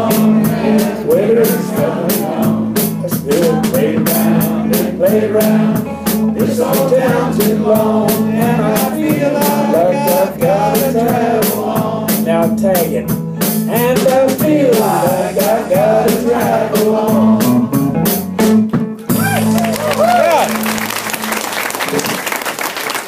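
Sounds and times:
voices singing: 0.0s - 18.0s
drum kit steady beat: 0.0s - 20.7s
electric bass: 0.0s - 21.5s
electric guitar: 13.1s - 22.2s.

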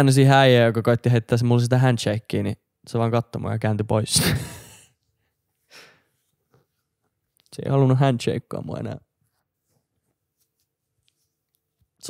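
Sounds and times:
faint breath: 5.6s - 6.3s.

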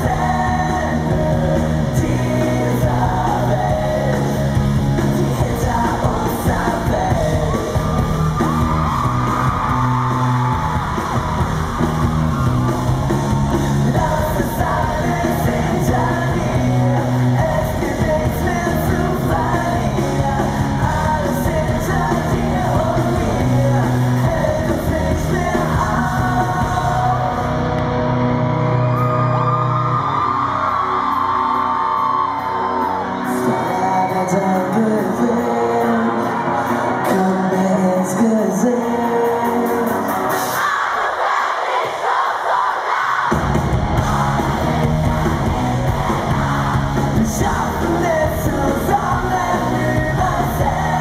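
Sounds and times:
person singing: 0.0s - 8.6s, 13.4s - 27.9s, 31.9s - 40.8s, 44.0s - 51.0s
bass guitar: 0.0s - 40.4s, 43.3s - 51.0s
electric guitar: 0.0s - 40.5s, 43.4s - 51.0s
live rock band: 0.0s - 42.0s, 42.8s - 51.0s.

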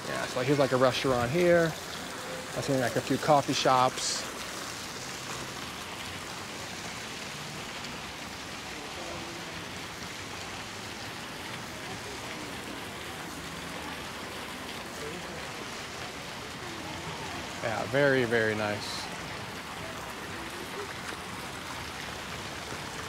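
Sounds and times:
fountain jets splashing into pool: 0.0s - 23.0s.

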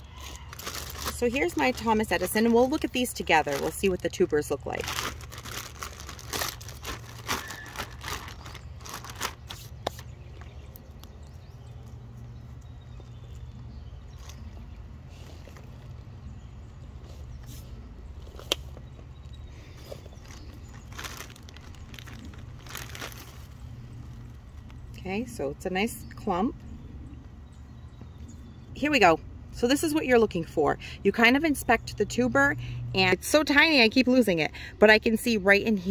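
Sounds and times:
plastic bag crinkling: 0.0s - 24.9s
steady low hum: 0.0s - 35.8s.

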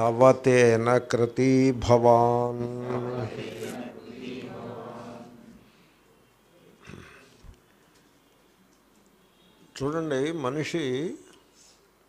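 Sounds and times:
man chanting: 0.0s - 4.1s
short breath: 6.8s - 7.5s.

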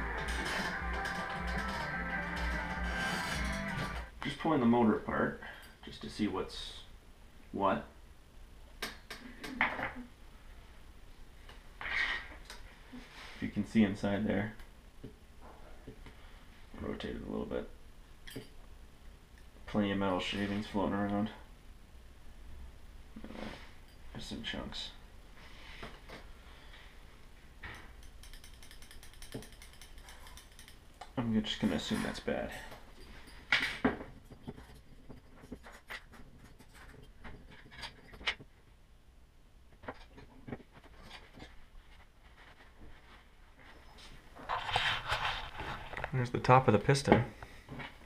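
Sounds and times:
metal engine parts clicking: 27.8s - 30.8s
rustling: 39.8s - 46.2s.

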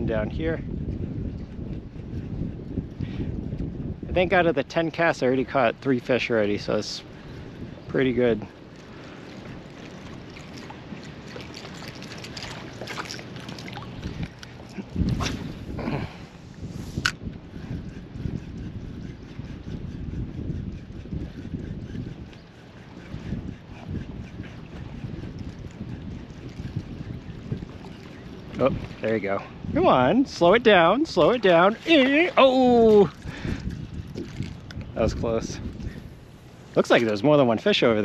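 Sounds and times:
choppy water lapping: 0.0s - 38.0s
wind on microphone: 0.0s - 38.0s.

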